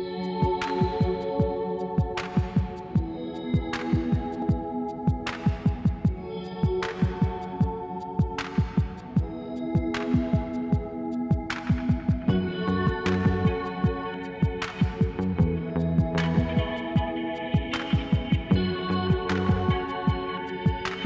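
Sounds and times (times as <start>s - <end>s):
deep pulsing kick drum: 8.2s - 20.8s.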